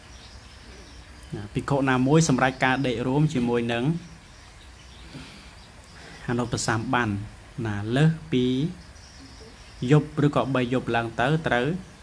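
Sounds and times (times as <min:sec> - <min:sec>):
man speaking: 0:01.3 - 0:04.2, 0:06.2 - 0:08.8, 0:09.8 - 0:12.0.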